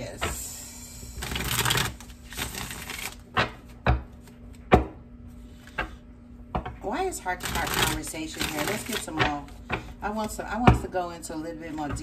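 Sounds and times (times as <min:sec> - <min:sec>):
cards shuffling: 0:01.2 - 0:04.6.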